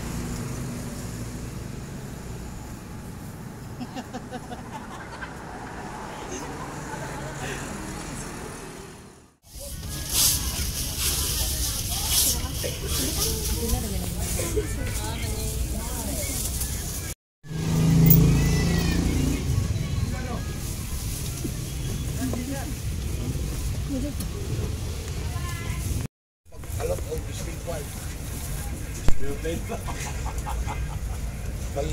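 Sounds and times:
vehicle engine and road rumble: 0.0s - 31.9s
passengers talking: 3.4s - 17.2s, 17.8s - 31.9s.

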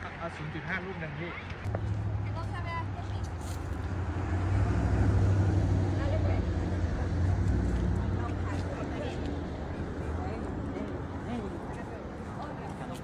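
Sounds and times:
vehicle engine rumble passing: 1.7s - 13.0s.

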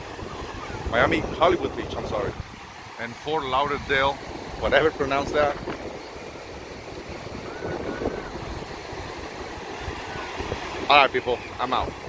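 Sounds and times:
surf breaking on shore: 0.0s - 12.0s
wind buffeting microphone: 0.0s - 12.0s.

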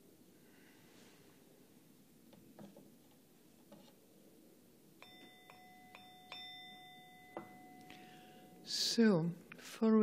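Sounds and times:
small metal bell ringing: 5.0s - 8.7s.

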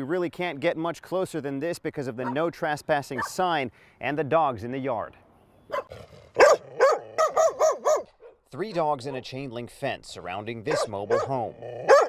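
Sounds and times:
dogs barking: 2.2s - 2.5s, 3.2s - 3.4s, 5.7s - 9.2s, 10.7s - 12.0s.

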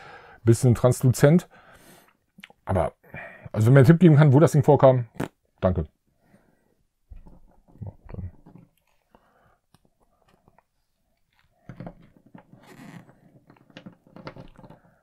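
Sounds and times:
figure set on wooden table: 6.4s - 15.0s.

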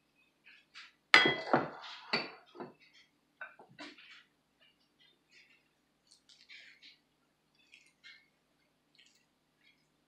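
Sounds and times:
dishes clinking on counter: 1.2s - 4.0s.

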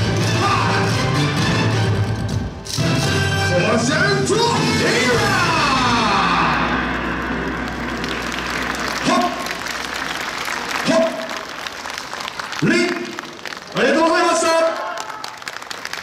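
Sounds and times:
dance music track: 3.7s - 11.3s
applause: 6.1s - 16.0s.

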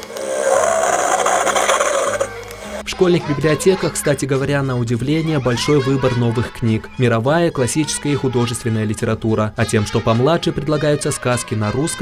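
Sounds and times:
buzzing rasping electronic sound effect: 0.0s - 2.8s.

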